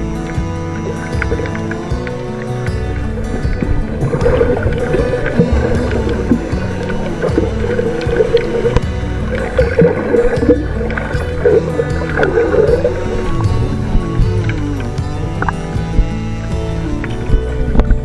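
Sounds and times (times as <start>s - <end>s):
background music with sustained tones: 0.0s - 18.0s
repeating low bass: 0.0s - 18.0s.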